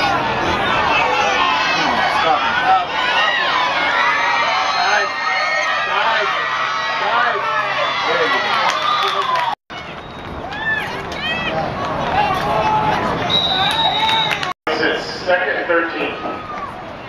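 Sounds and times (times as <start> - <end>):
spectators shouting and cheering: 0.0 - 17.0
whistle blast: 13.2 - 14.5.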